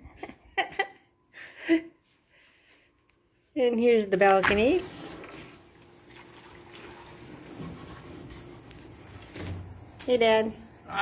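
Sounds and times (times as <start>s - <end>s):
insects chirping: 4.2s - 11.0s.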